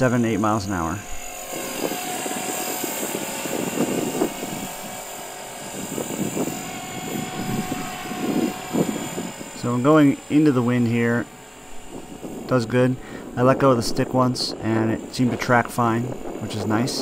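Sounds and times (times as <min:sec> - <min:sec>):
rc helicopter motor whine: 0:00.0 - 0:17.0
rotor whoosh: 0:00.0 - 0:17.0.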